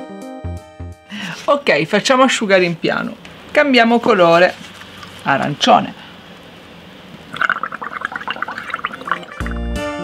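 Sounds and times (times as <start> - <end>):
air bubbling through straw: 7.2 - 9.6.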